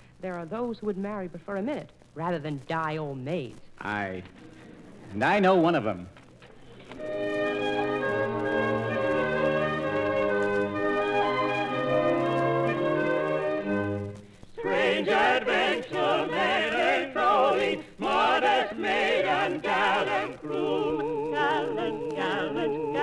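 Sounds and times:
orchestra playing held chords: 7.0s - 20.8s
operatic singers with vibrato: 14.6s - 23.0s.

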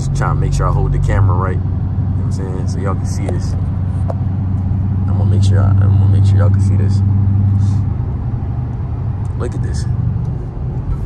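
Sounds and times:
low engine drone: 0.0s - 11.0s
tyre and road rumble: 0.0s - 11.0s.

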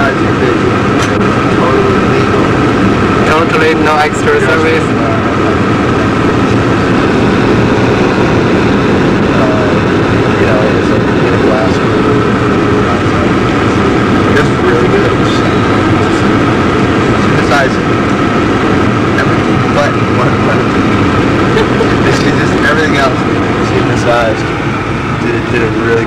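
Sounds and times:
car road and engine noise: 0.0s - 26.0s
faint voices: 0.0s - 26.0s.

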